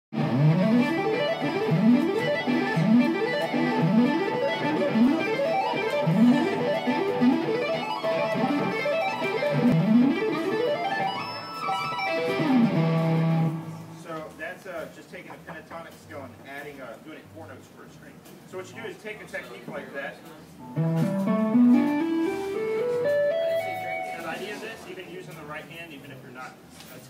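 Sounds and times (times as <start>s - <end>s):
electric guitar tapping runs: 0.2s - 13.8s, 20.8s - 24.2s.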